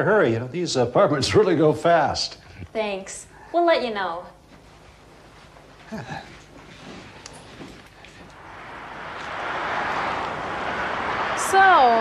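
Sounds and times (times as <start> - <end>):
freeway traffic rush: 8.0 - 12.0.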